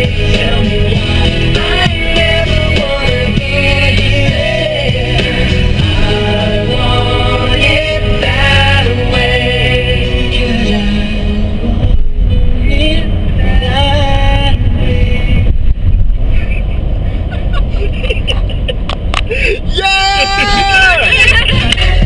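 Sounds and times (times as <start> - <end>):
road and engine rumble: 0.0 - 22.0
people laughing: 16.4 - 22.0
people talking: 19.4 - 22.0.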